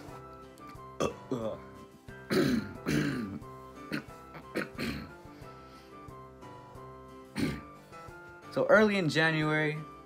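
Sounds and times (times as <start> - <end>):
background music: 0.0 - 10.0
man clearing his throat: 1.0 - 1.7, 2.3 - 5.2, 7.4 - 7.7.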